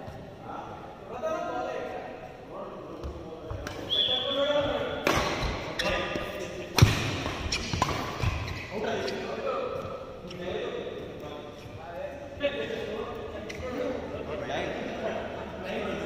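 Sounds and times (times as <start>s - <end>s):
racket striking shuttlecock: 5.0s - 5.7s, 6.7s - 8.5s.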